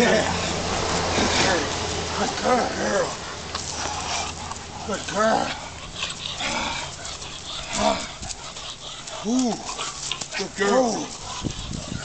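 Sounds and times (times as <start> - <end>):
scuffling and rustling: 0.0 - 12.0.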